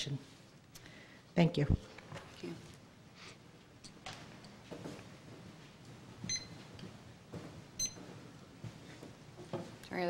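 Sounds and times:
short high-pitched beeps: 0:06.3 - 0:06.6.

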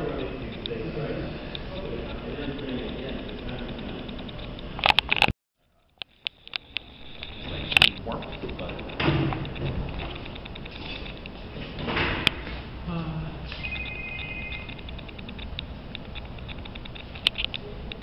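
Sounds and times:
indistinct voices: 0:00.0 - 0:05.2, 0:06.2 - 0:11.3
handling noise: 0:05.9 - 0:12.7, 0:13.6 - 0:18.0
sharp knocks and clatters: 0:06.0 - 0:12.7.

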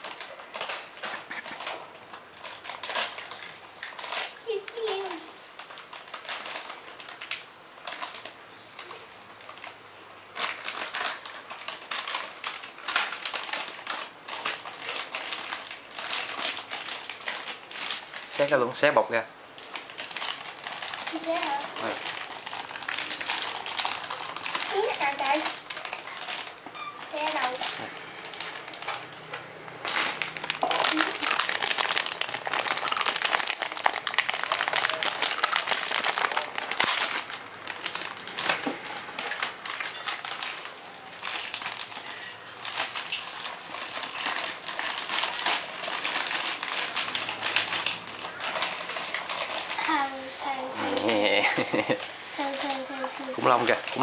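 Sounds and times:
plastic packaging crinkling: 0:00.0 - 0:54.0.

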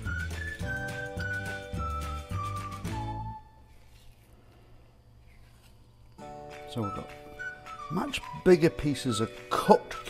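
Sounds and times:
whistle-like melody over bass: 0:00.0 - 0:03.6, 0:06.7 - 0:10.0.

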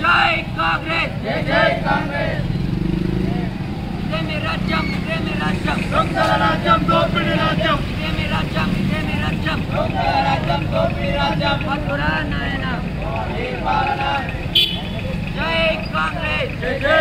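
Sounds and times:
bus engine idling: 0:00.0 - 0:17.0
protesters shouting: 0:00.0 - 0:17.0.

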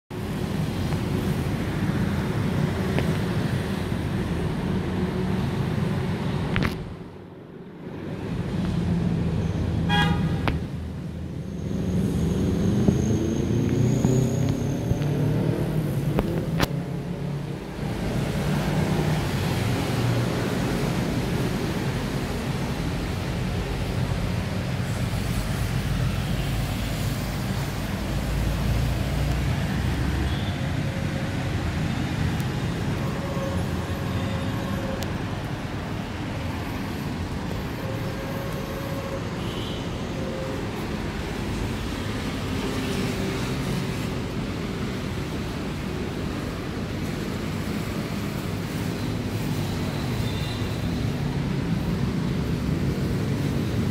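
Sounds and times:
road noise: 0:00.1 - 0:53.9
vehicle engine: 0:00.1 - 0:53.9.

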